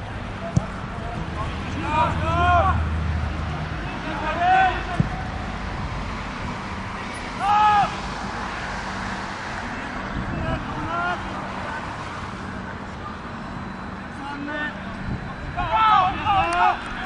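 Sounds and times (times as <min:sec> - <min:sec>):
steady outdoor rumble: 0:00.0 - 0:17.0
players shouting short calls: 0:01.5 - 0:03.0, 0:07.3 - 0:08.1, 0:15.4 - 0:17.0.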